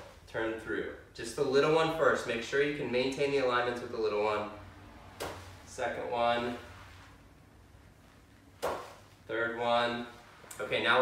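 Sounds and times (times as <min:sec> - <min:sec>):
golf club striking mat: 0:05.1 - 0:05.6, 0:08.6 - 0:09.1.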